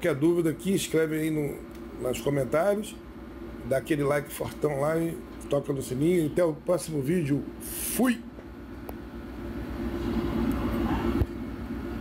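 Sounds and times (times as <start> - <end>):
low rumbling background noise: 0.0 - 12.0.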